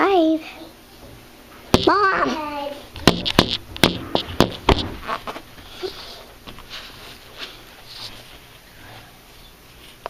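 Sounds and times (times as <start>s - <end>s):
sharp close knocks: 1.7s - 2.0s, 3.0s - 5.4s.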